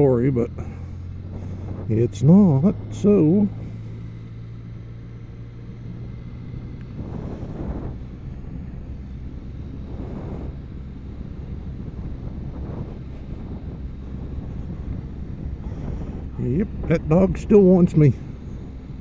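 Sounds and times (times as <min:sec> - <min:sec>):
motorcycle engine humming: 0:00.0 - 0:19.0
wind rushing over microphone: 0:01.1 - 0:19.0.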